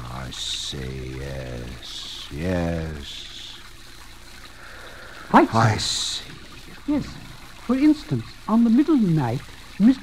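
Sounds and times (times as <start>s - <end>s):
fountain trickling and splashing: 0.0s - 10.0s
recording hiss and low hum: 0.0s - 10.0s.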